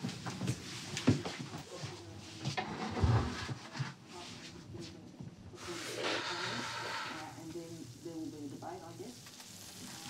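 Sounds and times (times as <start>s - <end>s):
steak sizzling in a pan: 6.6s - 10.0s.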